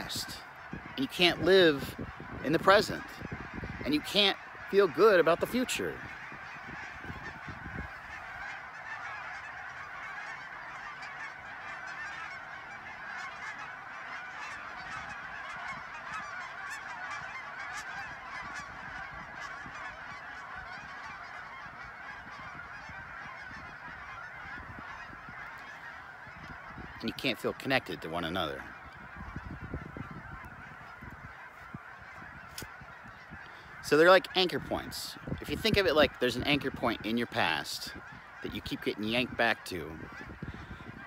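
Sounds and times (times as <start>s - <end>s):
flock of geese honking: 0.0s - 41.0s.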